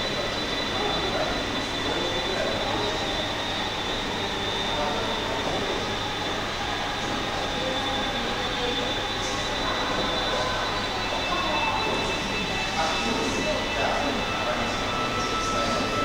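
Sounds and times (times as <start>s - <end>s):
faint distant voices: 0.0s - 16.0s
faint high steady tones: 0.0s - 16.0s.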